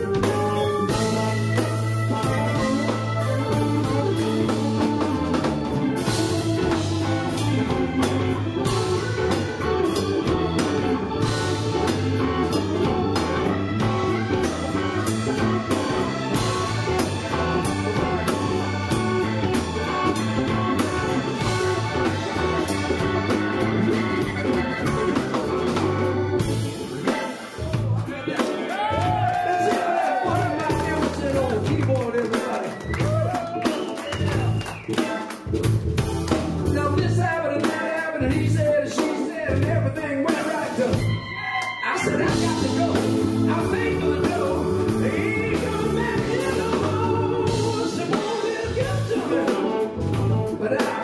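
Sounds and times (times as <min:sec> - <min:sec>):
drum kit: 0:00.0 - 0:51.0
electric guitar: 0:00.0 - 0:51.0
keyboard: 0:00.0 - 0:51.0.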